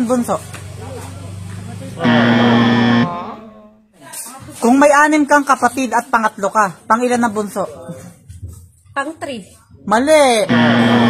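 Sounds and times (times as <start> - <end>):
loud buzzing tone sliding down: 2.0 - 3.4, 10.5 - 11.0.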